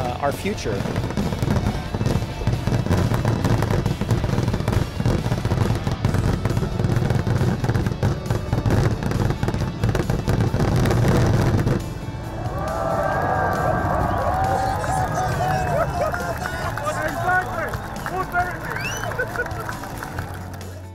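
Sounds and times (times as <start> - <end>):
fireworks bursting and crackling: 0.0 - 20.9
music: 0.0 - 20.9.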